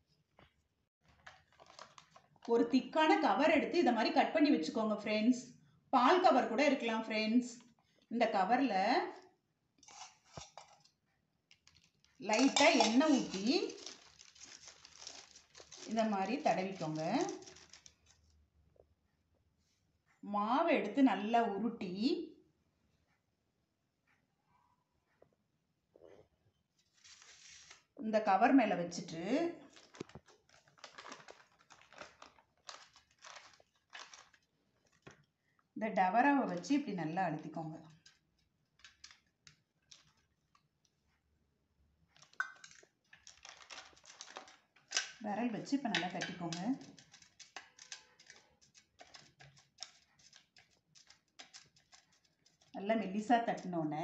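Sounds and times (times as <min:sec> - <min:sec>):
plastic packet crinkling: 0:01.1 - 0:02.5, 0:11.5 - 0:18.3, 0:29.6 - 0:35.3, 0:37.9 - 0:40.8, 0:42.1 - 0:45.2, 0:45.9 - 0:53.7.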